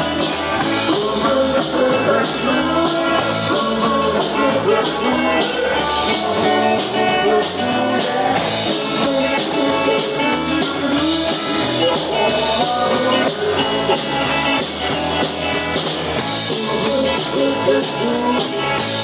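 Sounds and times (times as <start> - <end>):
amplified electric guitar: 0.0 - 19.0
steady drum beat: 0.0 - 19.0.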